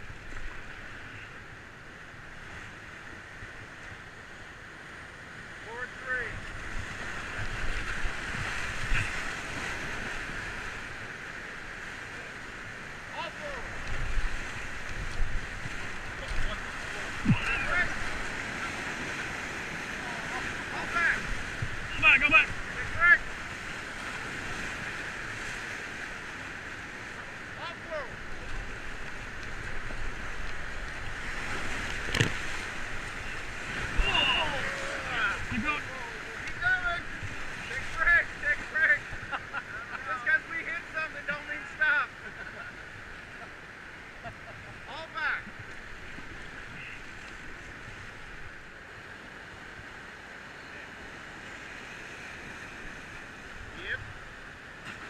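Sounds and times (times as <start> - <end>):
whitewater rushing and splashing: 0.0 - 55.0
voices calling out: 16.1 - 23.4, 33.2 - 43.6.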